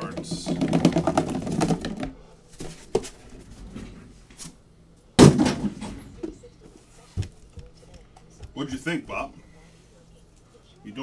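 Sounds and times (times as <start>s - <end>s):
cardboard boxes knocking: 0.0s - 2.2s.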